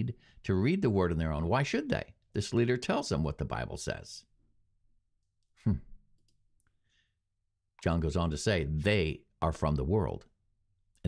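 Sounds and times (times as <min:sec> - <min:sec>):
man humming hmm: 0:05.6 - 0:06.0.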